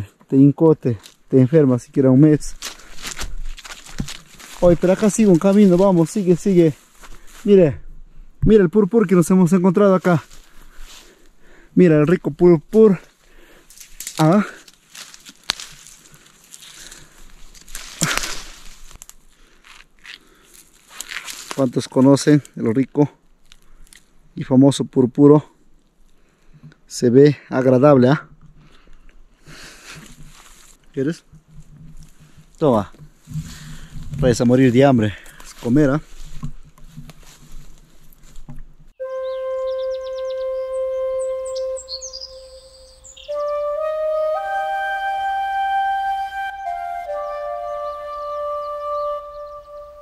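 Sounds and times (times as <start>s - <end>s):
soft rustle: 2.2s - 7.6s, 10.0s - 11.4s, 13.0s - 22.2s, 28.4s - 39.0s
bird chirps: 39.0s - 44.1s, 47.0s - 50.0s
flute music: 39.0s - 50.0s.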